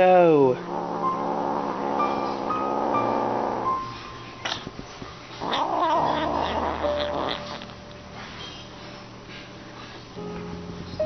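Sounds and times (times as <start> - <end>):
kitten meowing: 5.5 - 7.8.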